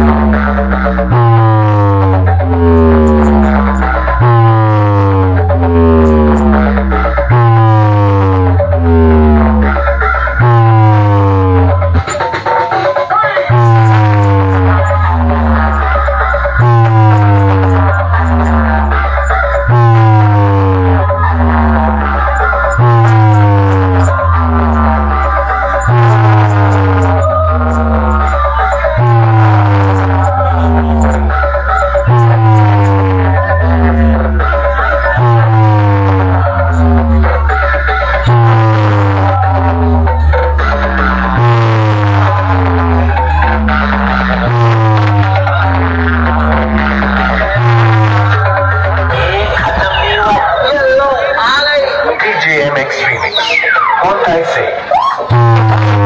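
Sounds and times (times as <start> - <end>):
loud electronic music: 0.0 - 56.0.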